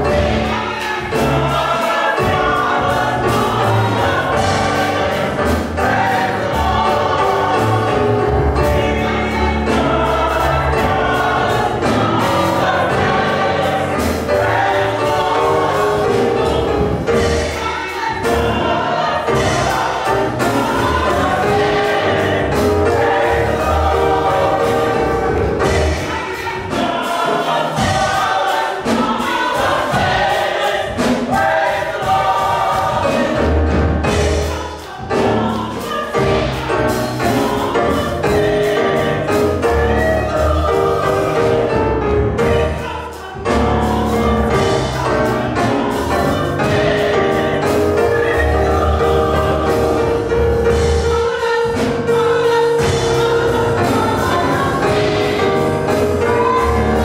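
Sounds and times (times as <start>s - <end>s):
choir singing gospel song: 0.0s - 57.0s
instrumental accompaniment: 0.0s - 57.0s.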